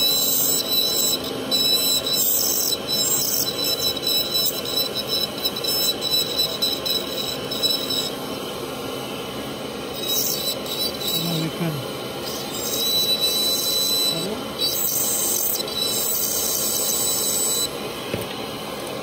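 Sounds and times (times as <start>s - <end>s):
dental drill whine: 0.0s - 19.0s.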